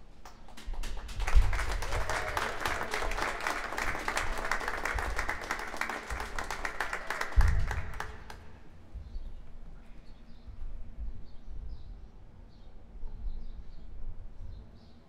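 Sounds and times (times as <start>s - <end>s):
audience applauding: 0.2s - 8.6s.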